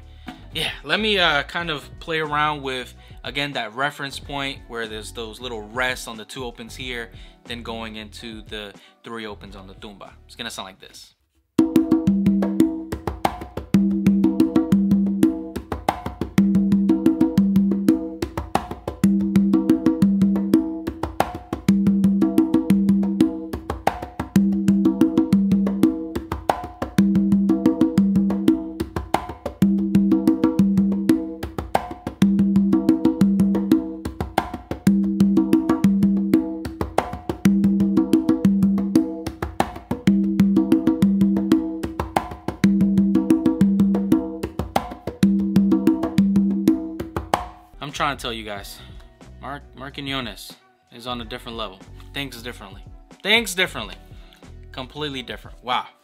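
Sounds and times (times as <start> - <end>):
conga drums played by hand: 11.6 - 48.0.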